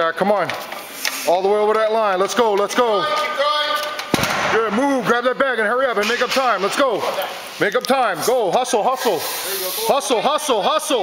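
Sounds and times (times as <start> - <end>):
heavy thud on concrete floor: 4.1 - 4.7.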